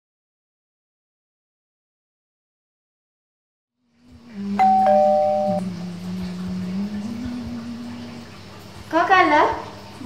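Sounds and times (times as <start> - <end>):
low steady hum: 4.0 - 10.0
two-tone doorbell chime: 4.6 - 5.6.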